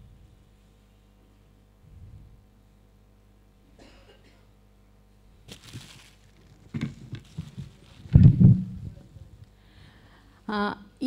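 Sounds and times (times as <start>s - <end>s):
foil gift wrap crinkling: 5.4s - 8.2s
dull low thumps: 8.1s - 9.0s.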